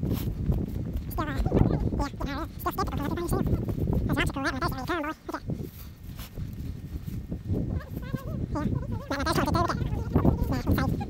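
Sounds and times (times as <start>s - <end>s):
steady low rumble: 0.0s - 11.0s
indistinct wavering voices: 7.7s - 11.0s.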